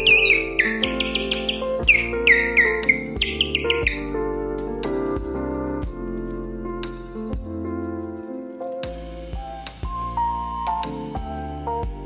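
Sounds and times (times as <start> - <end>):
plastic reed bird-like chirps: 0.0 - 4.1
keyboard music: 0.0 - 9.1.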